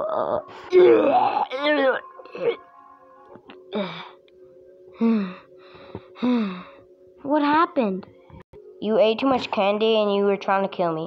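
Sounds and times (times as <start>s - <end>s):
person gasping: 3.7s - 4.2s, 5.0s - 6.8s.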